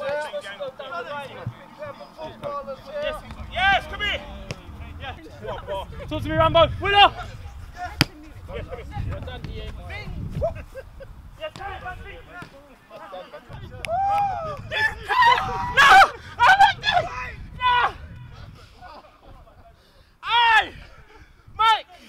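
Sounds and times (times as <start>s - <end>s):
footballers calling and shouting: 0.0s - 22.0s
football kick: 7.9s - 10.6s.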